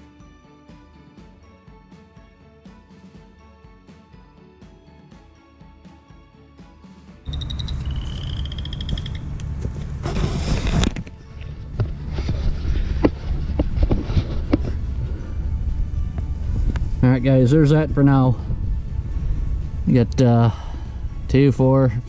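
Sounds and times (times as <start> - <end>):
soft background music: 0.0 - 22.0.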